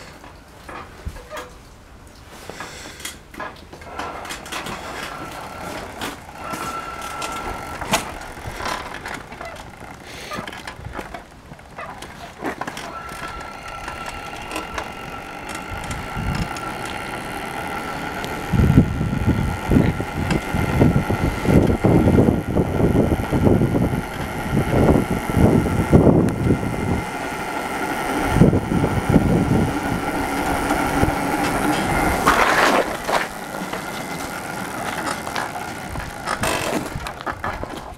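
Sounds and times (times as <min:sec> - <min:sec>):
electric motor whine: 0:03.9 - 0:37.9
low rumble and buffeting: 0:04.5 - 0:37.9.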